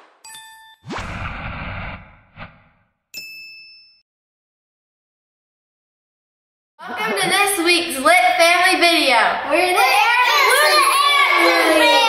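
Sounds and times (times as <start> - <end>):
bright bell-like ding: 3.2 - 4.0.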